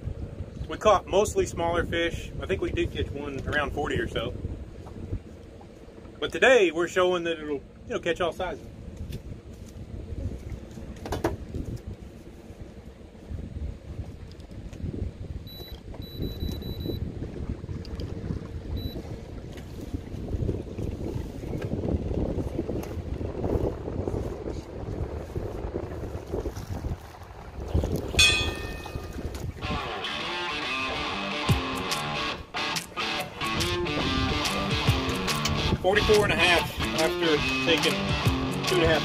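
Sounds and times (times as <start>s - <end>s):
wind rushing on microphone: 0.0s - 5.7s, 8.4s - 30.0s, 33.5s - 37.9s
knocks and clicks on boat: 10.4s - 11.9s
high electronic beeps: 15.5s - 17.0s.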